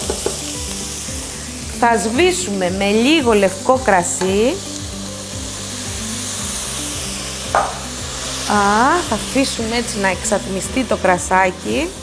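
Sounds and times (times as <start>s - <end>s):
vegetables sizzling in oil: 0.0s - 12.0s.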